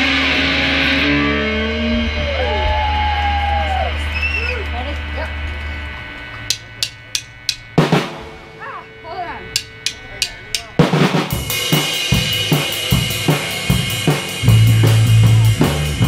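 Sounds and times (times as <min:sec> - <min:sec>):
rock drum beat: 0:06.4 - 0:16.0
drumstick clicks: 0:06.5 - 0:07.7, 0:09.6 - 0:10.8.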